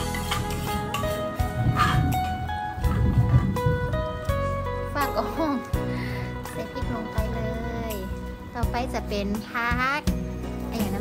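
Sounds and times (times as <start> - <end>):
music with held notes: 0.0 - 11.0.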